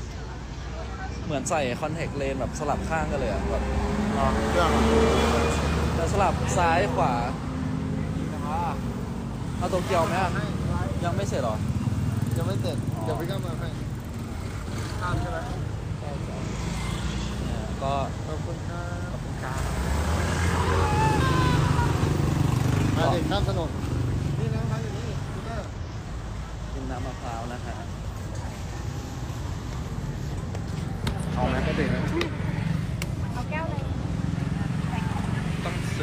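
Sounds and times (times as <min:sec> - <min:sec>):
low rumble of passing vehicles: 0:00.0 - 0:36.0
voices: 0:00.0 - 0:36.0.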